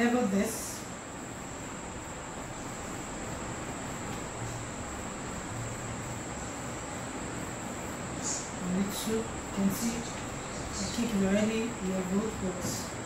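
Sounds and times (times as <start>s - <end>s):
background hiss: 0.0s - 13.0s
steady high-pitched whine: 0.0s - 13.0s.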